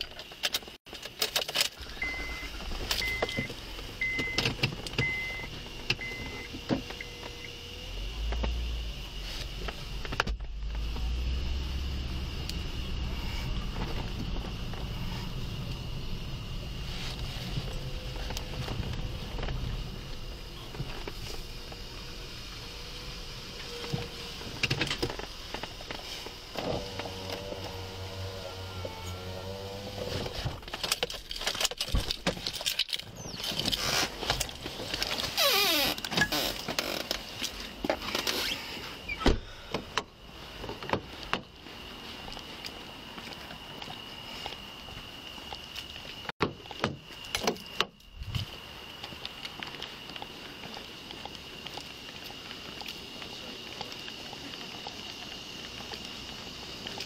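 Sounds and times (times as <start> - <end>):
car engine rumble: 0.0 - 57.0.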